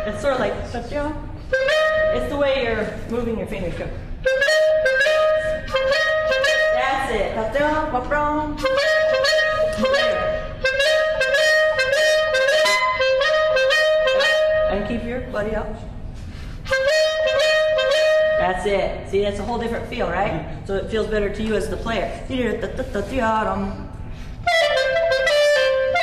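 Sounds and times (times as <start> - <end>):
clarinet playing short notes: 1.4 - 2.4, 4.2 - 7.2, 8.5 - 14.9, 16.6 - 18.5, 24.4 - 26.0.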